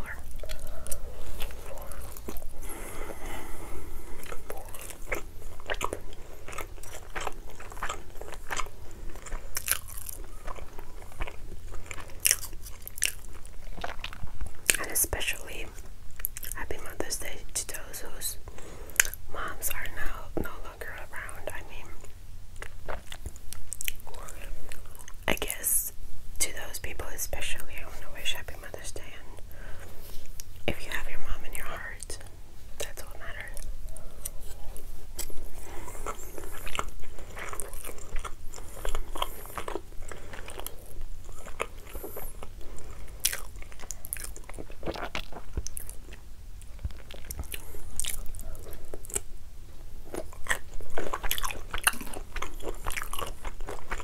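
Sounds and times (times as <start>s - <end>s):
chewing and mouth sounds: 0.0s - 25.7s, 28.5s - 54.0s.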